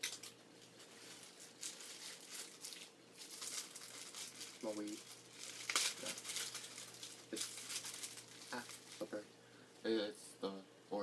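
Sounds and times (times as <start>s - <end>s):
plastic bag crinkling: 0.0s - 9.2s.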